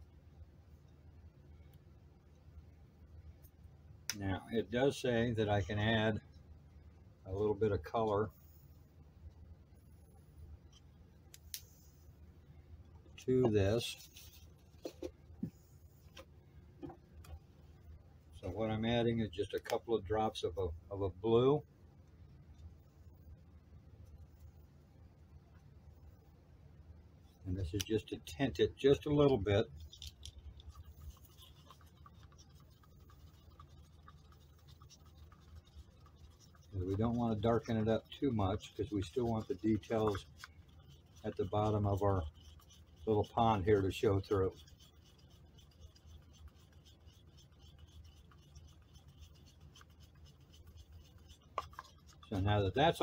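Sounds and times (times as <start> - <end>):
stir stick scraping paper cup: 13.2 - 15.1, 27.4 - 53.0.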